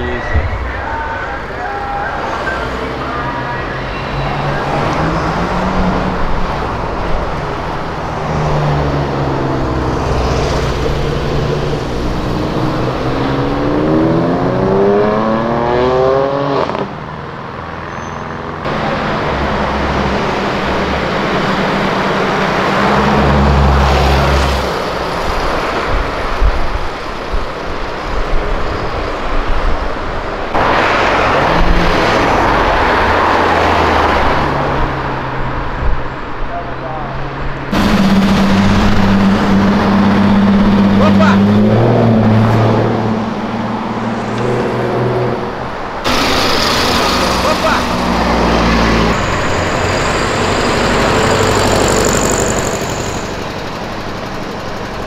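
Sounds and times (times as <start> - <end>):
cars passing: 0.0 - 55.0
traffic rumble: 0.0 - 55.0
car engine accelerating hard: 2.2 - 17.0, 18.5 - 26.5, 30.5 - 55.0.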